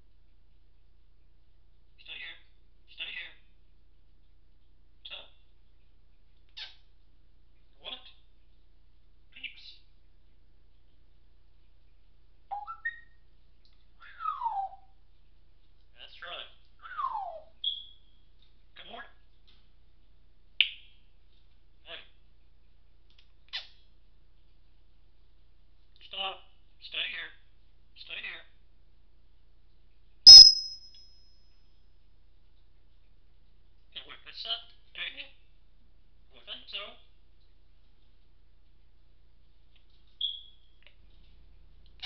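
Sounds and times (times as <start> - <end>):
parrot whistling: 30.3 - 30.8.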